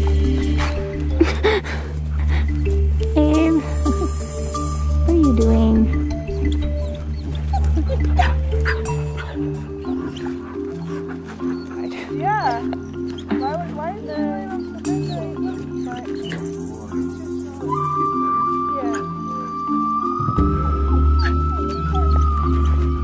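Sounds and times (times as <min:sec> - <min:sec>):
background music of held notes: 0:00.0 - 0:23.0
wolf pups whining: 0:05.9 - 0:23.0.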